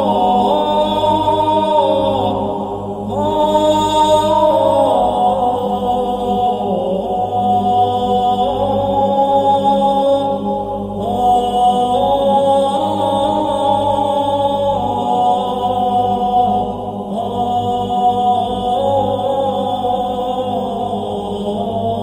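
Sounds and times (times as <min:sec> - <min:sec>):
choral chant: 0:00.0 - 0:22.0
steady low drone: 0:00.0 - 0:22.0.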